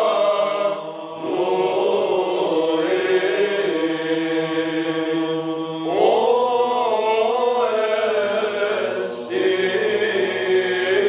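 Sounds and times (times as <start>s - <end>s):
chant melody with long sliding notes: 0.0s - 11.0s.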